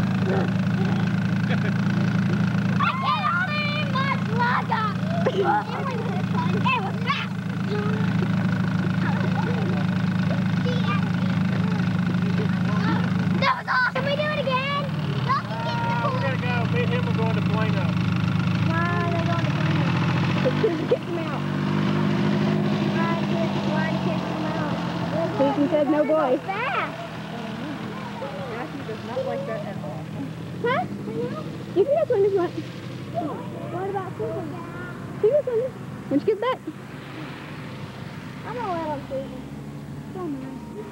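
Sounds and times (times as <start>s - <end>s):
atv engine running: 0.0s - 40.9s
children's voices and shouts: 2.7s - 16.6s, 22.8s - 37.5s, 38.3s - 40.9s.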